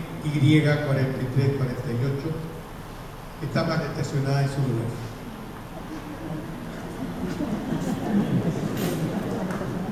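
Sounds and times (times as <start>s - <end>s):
murmur of audience voices: 3.4s - 9.9s.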